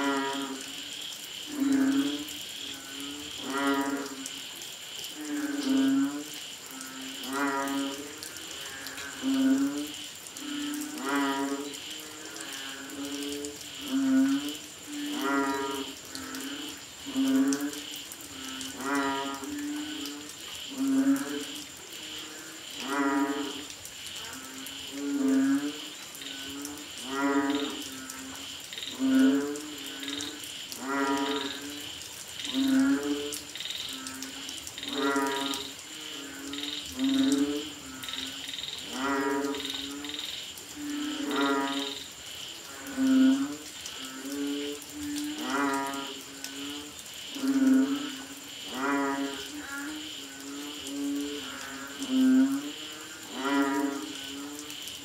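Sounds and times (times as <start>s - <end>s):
frogs calling in chorus: 0.0s - 55.0s.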